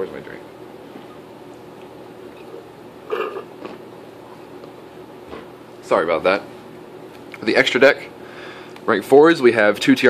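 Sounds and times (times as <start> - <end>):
low room hum: 0.0 - 10.0
person swallowing: 2.3 - 3.9.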